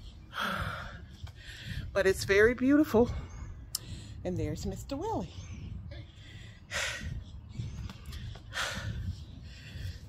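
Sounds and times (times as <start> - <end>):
heavy breaths: 0.0 - 4.4, 5.2 - 10.0
wind rumble on microphone: 0.0 - 10.0.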